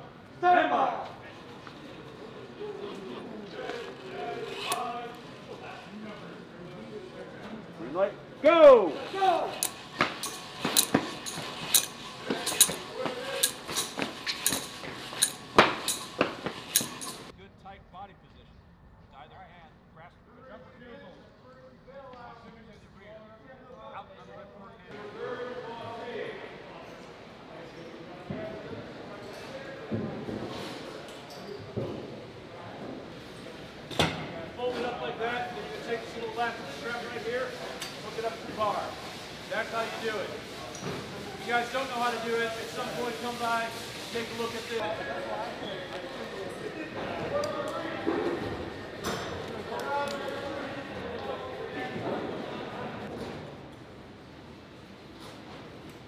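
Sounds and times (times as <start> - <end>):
murmur of voices: 0.0 - 15.5, 20.2 - 53.7
metal snap hooks clinking: 9.6 - 16.1, 16.7 - 17.3.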